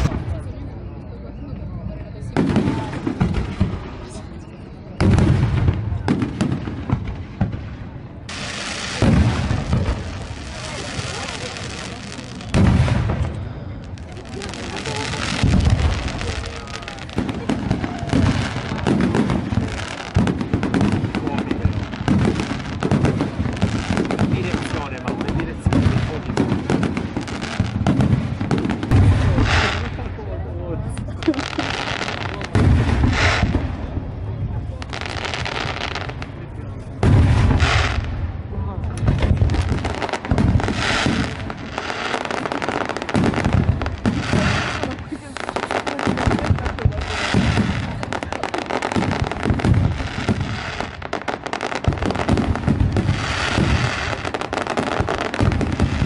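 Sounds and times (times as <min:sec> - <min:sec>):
fireworks bangs and pops: 0:00.0 - 0:56.0.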